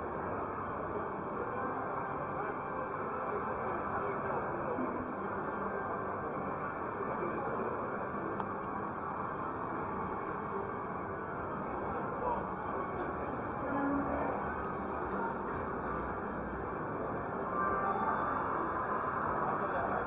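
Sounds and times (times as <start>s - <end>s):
chatter of many voices: 0.0s - 20.0s
electronic gaming machines: 14.1s - 20.0s.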